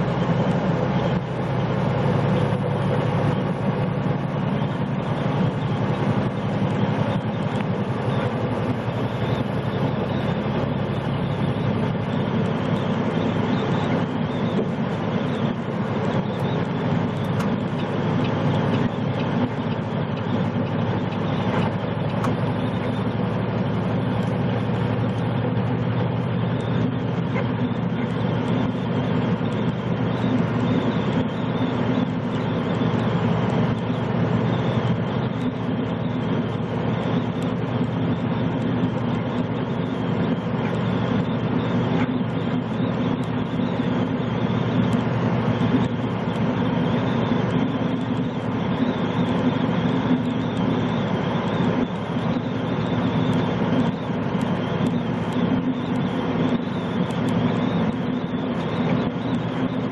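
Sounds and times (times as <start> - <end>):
truck diesel engine drone: 0.0 - 59.9.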